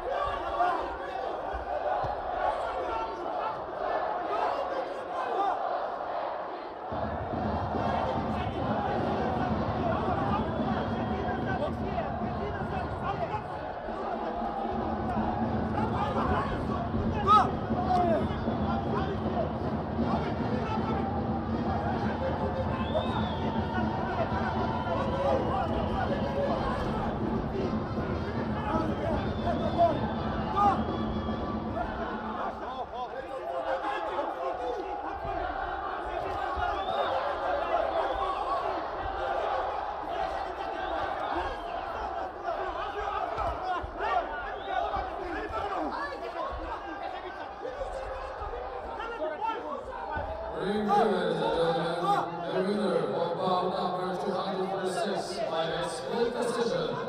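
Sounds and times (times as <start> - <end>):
crowd shouts: 0.0 - 57.0
hubbub of many voices: 0.0 - 57.0.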